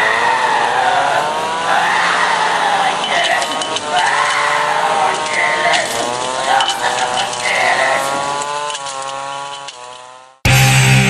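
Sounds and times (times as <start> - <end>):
distorted electric guitars: 1.7 - 9.1, 10.4 - 11.0.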